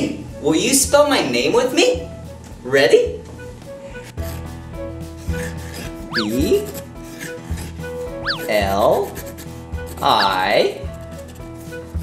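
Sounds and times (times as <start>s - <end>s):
background music with steady beat: 0.0s - 12.0s
marker rubbing across paper: 5.1s - 12.0s.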